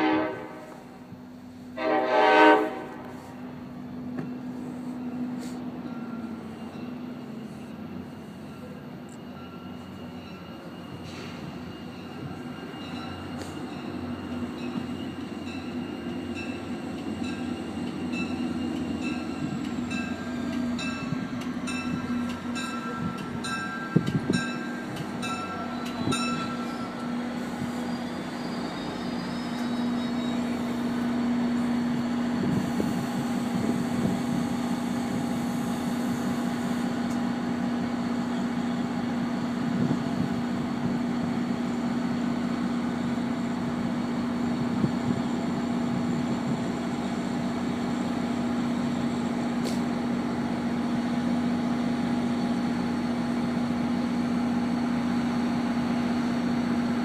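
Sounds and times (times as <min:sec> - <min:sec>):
diesel train engine hum: 0:00.0 - 0:57.0.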